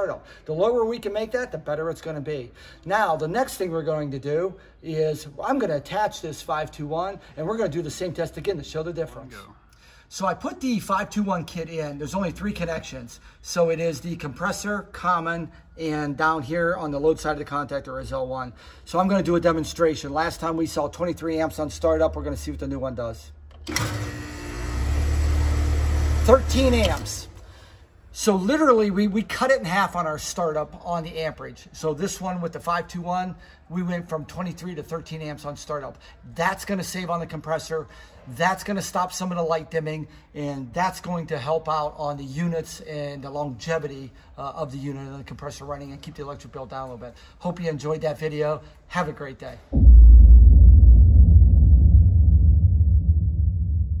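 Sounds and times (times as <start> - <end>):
deep rumbling boom: 49.7 - 54.0.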